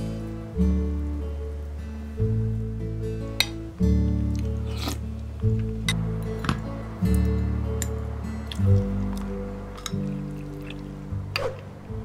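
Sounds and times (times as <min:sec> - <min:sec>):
background music with bass line: 0:00.0 - 0:12.0
spoon and chopsticks clinking bowls: 0:07.8 - 0:10.8.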